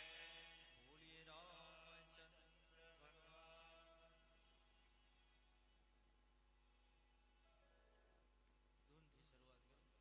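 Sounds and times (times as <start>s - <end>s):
man singing: 0.0s - 4.4s.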